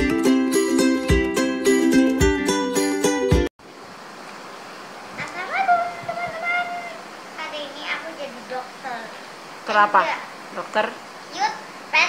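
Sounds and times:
faint room hiss: 0:03.6 - 0:12.0.

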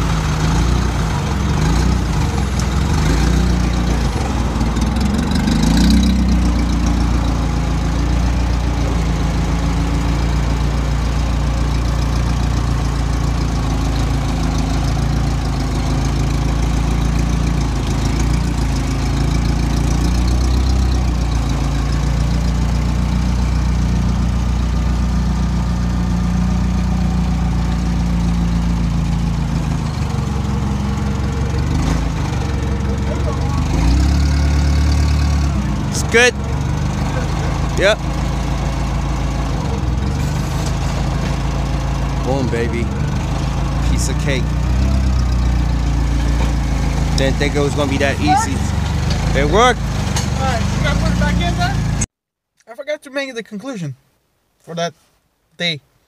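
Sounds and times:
forklift engine running and revving: 0:00.0 - 0:52.1.

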